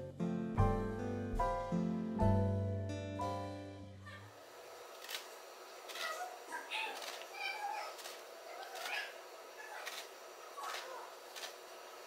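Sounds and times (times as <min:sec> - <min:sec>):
piano music: 0:00.0 - 0:04.1.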